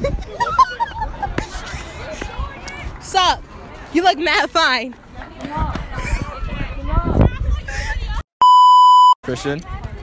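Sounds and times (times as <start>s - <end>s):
young people chattering: 0.0s - 8.2s, 9.3s - 10.0s
electronic test-tone beep: 8.4s - 9.2s.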